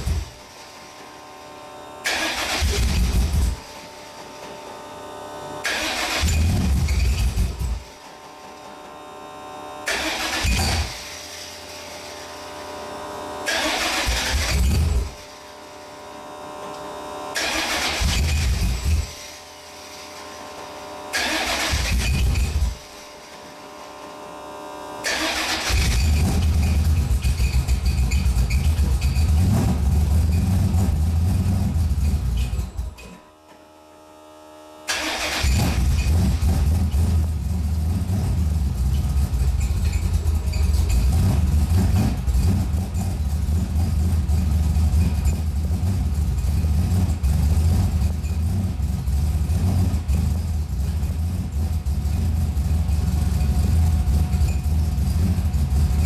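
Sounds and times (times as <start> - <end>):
car engine running: 0.0 - 8.0, 8.7 - 33.0, 34.1 - 56.0
car engine starting and dying: 2.0 - 3.7, 5.6 - 7.9, 9.8 - 12.5, 13.4 - 15.3, 17.3 - 19.3, 19.9 - 23.1, 25.0 - 33.1, 34.8 - 56.0.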